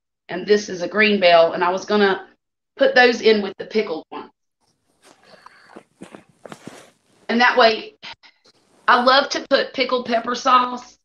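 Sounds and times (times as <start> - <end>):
soft footsteps on floor: 5.0 - 7.4.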